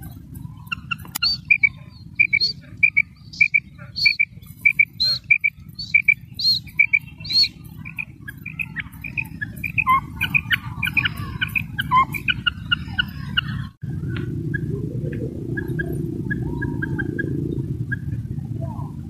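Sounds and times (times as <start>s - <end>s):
low rumble: 0.0s - 19.0s
quail calls: 0.0s - 19.0s.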